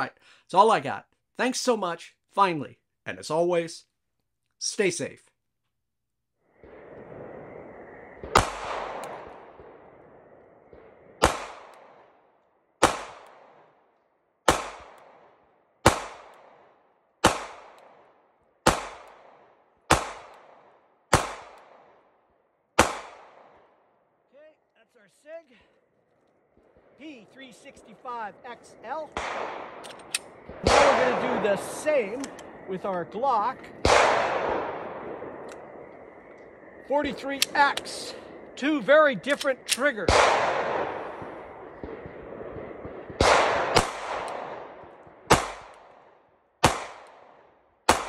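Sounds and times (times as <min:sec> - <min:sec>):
pistol shots: 0:08.2 - 0:09.8, 0:10.7 - 0:12.1, 0:12.8 - 0:13.8, 0:14.4 - 0:22.0, 0:22.8 - 0:23.7, 0:29.1 - 0:32.6, 0:33.8 - 0:35.6, 0:39.3 - 0:48.0
gunshot echo: 0:08.2 - 0:10.1, 0:10.7 - 0:12.1, 0:12.8 - 0:13.7, 0:14.5 - 0:22.0, 0:22.8 - 0:23.6, 0:29.1 - 0:32.6, 0:33.7 - 0:35.4, 0:39.7 - 0:46.0, 0:46.6 - 0:48.0.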